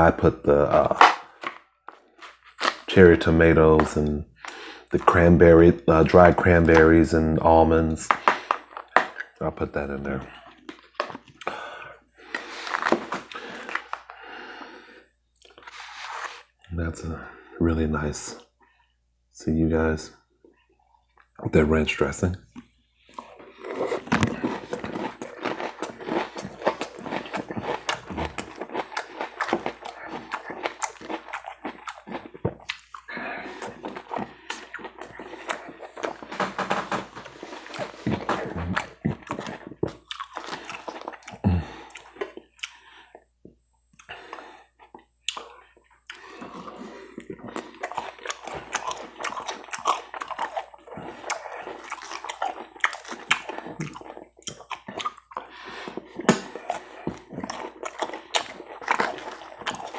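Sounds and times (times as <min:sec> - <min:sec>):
chewing crunchy salad: 0:22.5 - 0:36.4, 0:37.2 - 0:43.2, 0:43.9 - 0:59.9.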